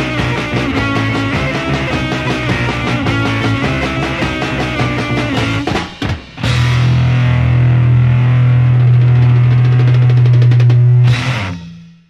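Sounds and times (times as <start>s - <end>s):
fast drum roll: 0.0s - 7.3s, 8.8s - 11.6s
psychedelic rock song: 0.0s - 11.9s.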